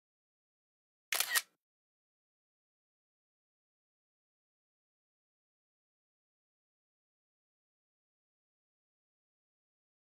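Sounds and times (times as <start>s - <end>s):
camera shutter click: 1.1s - 1.5s.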